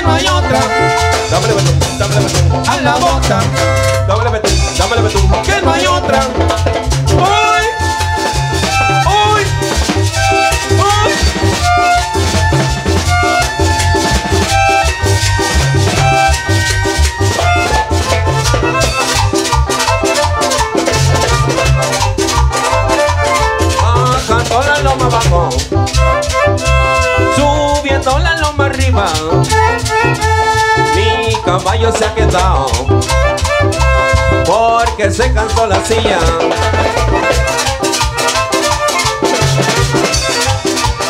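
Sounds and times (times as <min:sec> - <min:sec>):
live band playing cumbia: 0:00.0 - 0:41.0
pulsing bass: 0:00.0 - 0:41.0
rattling percussion: 0:00.0 - 0:41.0.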